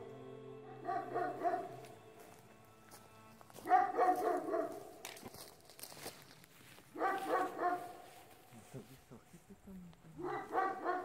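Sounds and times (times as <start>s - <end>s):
dog barking: 0.7s - 1.8s, 3.6s - 4.9s, 6.9s - 8.1s, 10.2s - 11.0s.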